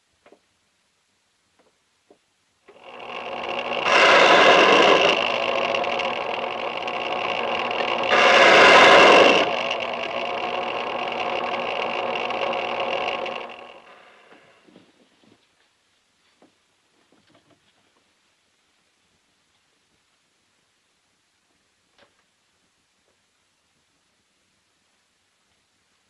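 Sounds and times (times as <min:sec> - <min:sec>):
key-cutting machine running: 0:02.7 - 0:14.3.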